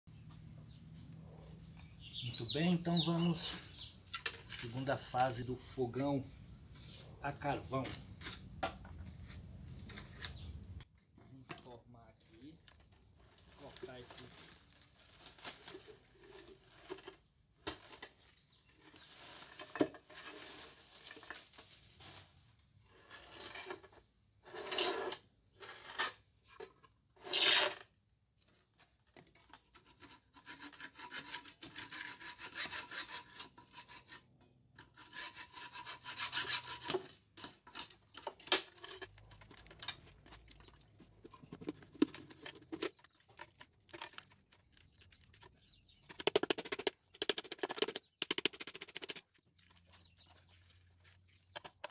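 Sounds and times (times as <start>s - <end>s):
scrapes of metal and cement: 3.1s - 51.9s
hacksaw cutting metal: 29.8s - 38.9s.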